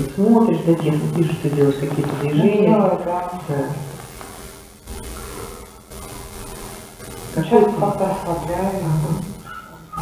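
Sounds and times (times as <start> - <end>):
woman speaking: 2.2 - 3.8.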